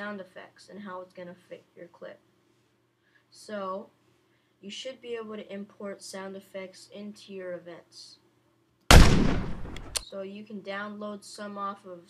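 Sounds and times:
heavy deep gunshot blast: 8.9 - 10.0
short sharp crack: 8.9 - 10.0.

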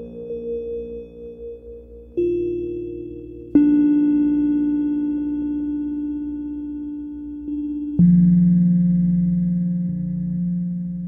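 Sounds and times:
ambient synthesizer drone music: 0.0 - 11.0.

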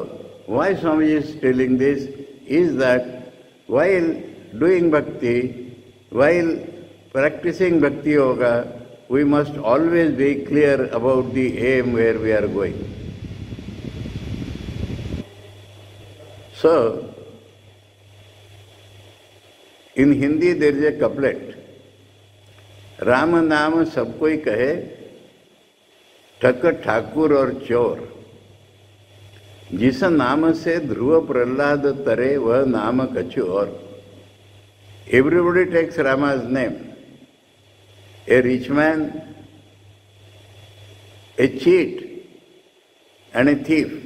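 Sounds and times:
man speaking: 0.0 - 12.8, 16.5 - 17.3, 20.0 - 21.6, 23.0 - 25.0, 26.4 - 28.2, 29.7 - 33.8, 35.1 - 37.0, 38.3 - 39.4, 41.4 - 42.1, 43.4 - 44.0
faint room noise: 0.0 - 44.0
low electrical hum: 0.0 - 44.0.

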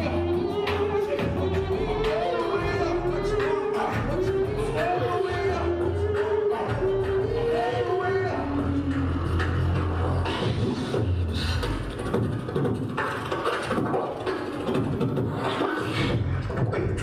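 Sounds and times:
person beatboxing into microphone: 0.0 - 17.0.

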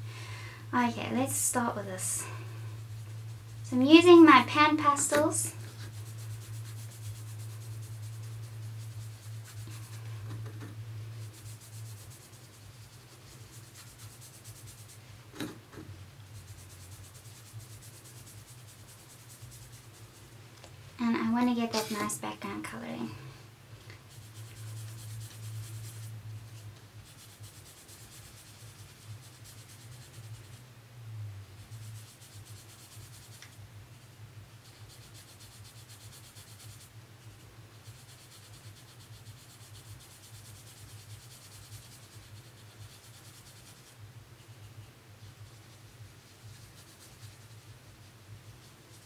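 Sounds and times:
applicator brushing on paper: 0.8 - 20.4, 21.1 - 23.0, 24.0 - 30.6, 31.6 - 49.0.

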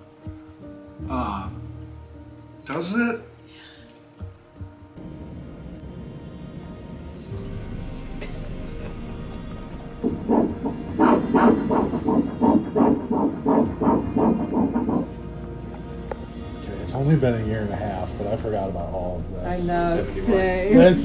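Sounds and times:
steady hum: 5.0 - 16.8
heartbeat whooshing pulses: 9.6 - 16.1.

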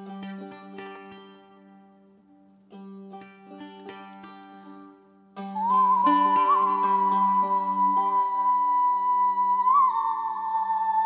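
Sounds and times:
plucked string accompaniment: 0.0 - 11.0
woman singing high held note: 5.6 - 11.0.

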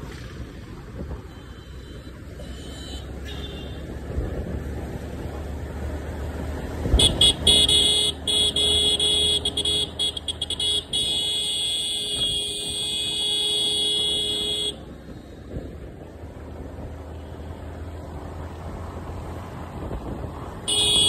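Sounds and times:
motorcycle engine rumble: 0.0 - 21.0
motorcycle horn tooting: 1.4 - 3.8, 7.0 - 14.8, 20.7 - 21.0.

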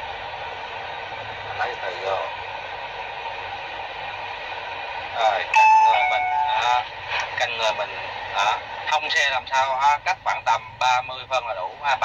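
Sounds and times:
steady hiss in truck cab: 0.0 - 5.5, 6.2 - 12.0.

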